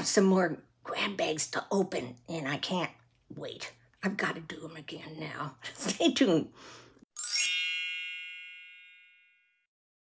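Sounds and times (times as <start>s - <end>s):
sparkling bell-like chime: 7.2s - 9.7s.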